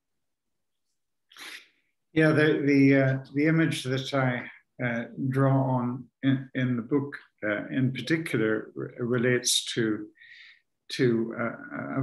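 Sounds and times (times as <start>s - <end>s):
man speaking: 1.4s - 1.6s, 2.2s - 10.2s, 10.9s - 12.0s.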